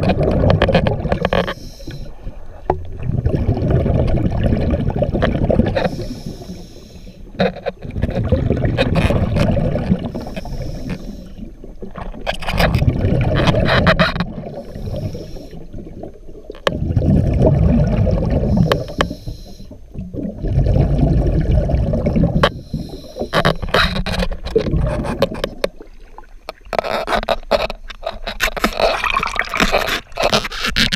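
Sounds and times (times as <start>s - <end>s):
diver exhaling bubbles underwater: 0.0s - 6.8s, 7.9s - 23.8s, 28.8s - 30.2s
regulator hiss: 1.4s - 2.3s, 5.9s - 7.3s, 14.6s - 15.7s, 18.5s - 19.8s.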